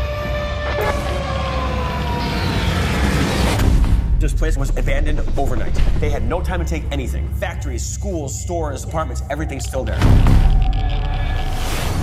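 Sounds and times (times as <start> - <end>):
siren wailing: 0.0 - 3.6.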